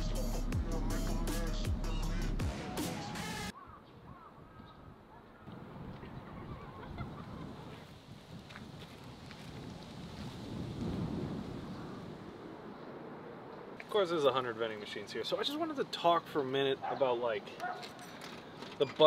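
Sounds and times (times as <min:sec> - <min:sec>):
background music: 0:00.0 - 0:03.5
faint bird calls: 0:03.5 - 0:07.5
wind rumble on microphone: 0:03.9 - 0:13.7.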